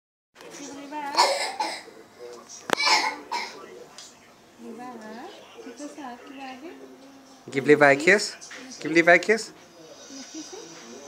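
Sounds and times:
person coughing: 0:01.2 - 0:01.9, 0:02.8 - 0:03.6.

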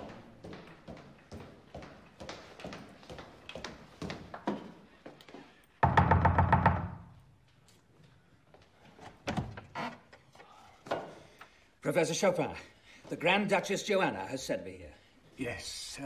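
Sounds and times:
knocking on a wooden door: 0:05.8 - 0:07.1.

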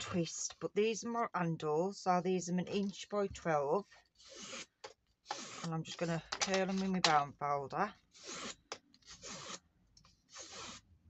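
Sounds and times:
cardstock rubbing over bone folder: 0:04.2 - 0:07.0.

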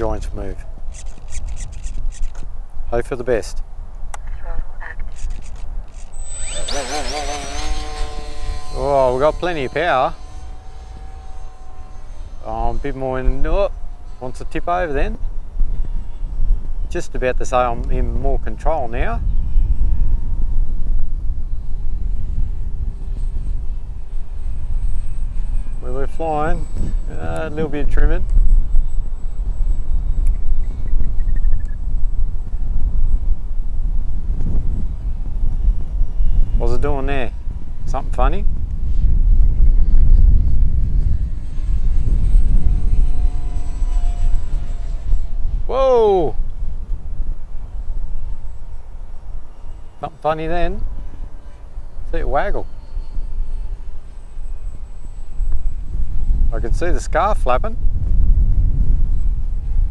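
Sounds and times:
electric motor and propeller whine: 0:00.0 - 0:59.9
wind rumble on microphone: 0:00.0 - 0:59.9.

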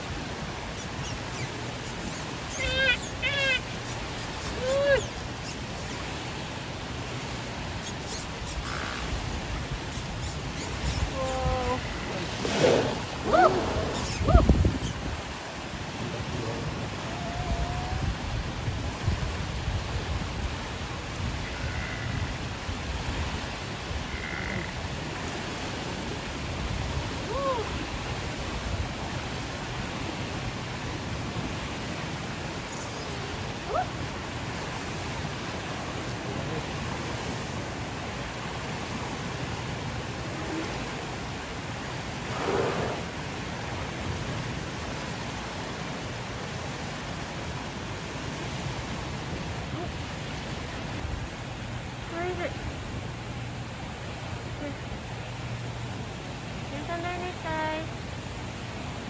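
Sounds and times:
water: 0:00.0 - 0:59.0
wind noise: 0:08.1 - 0:24.2
brief rush of noise: 0:42.3 - 0:43.2.

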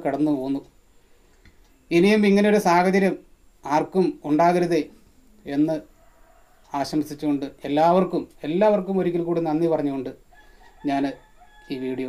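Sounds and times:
person speaking: 0:01.9 - 0:05.9
rooster crowing faintly: 0:04.6 - 0:12.0.

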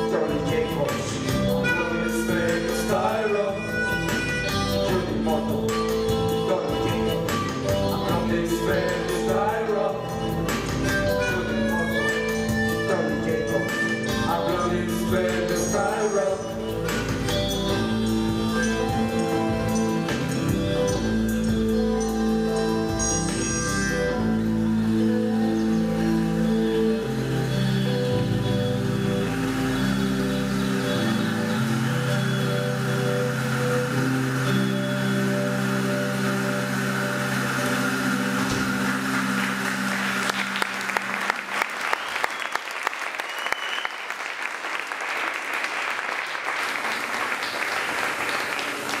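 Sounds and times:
live rock band sustained notes: 0:00.0 - 0:42.1
audience applause: 0:30.6 - 0:49.0.

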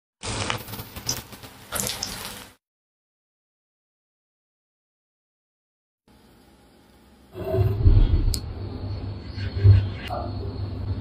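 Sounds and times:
fish frying in hot oil: 0:00.2 - 0:02.6.

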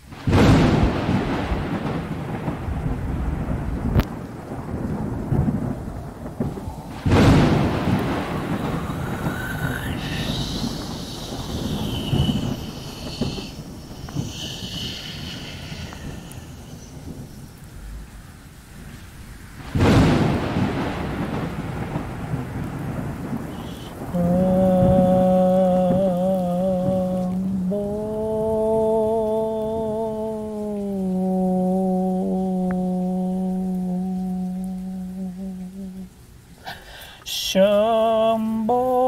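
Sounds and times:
rain: 0:00.0 - 0:39.0
loud thunder crack: 0:00.1 - 0:18.2, 0:19.6 - 0:27.2
rumbling thunder: 0:00.1 - 0:35.2.

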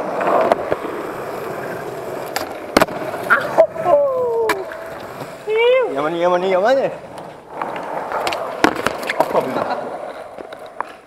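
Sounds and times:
skateboard clack: 0:00.0 - 0:05.8, 0:06.9 - 0:11.0
skateboard wheels rolling on concrete: 0:00.0 - 0:11.0.

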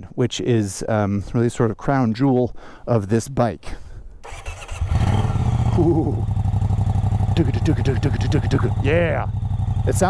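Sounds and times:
motorcycle engine idling: 0:04.2 - 0:10.0.

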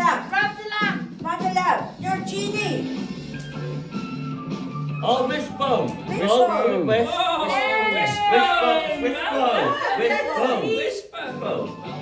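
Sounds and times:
game show background music: 0:00.0 - 0:12.0.

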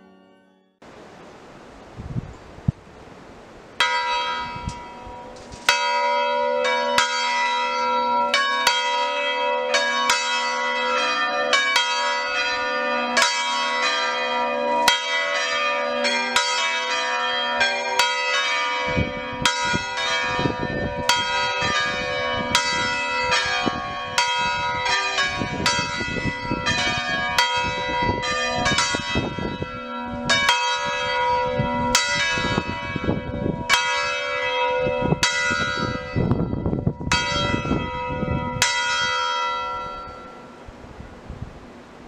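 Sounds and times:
church bells ringing: 0:00.0 - 0:00.8, 0:03.8 - 0:40.6.

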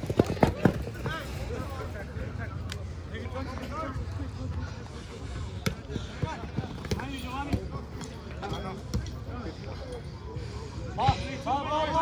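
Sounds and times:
ball kicked and bouncing on turf: 0:05.6 - 0:09.2.

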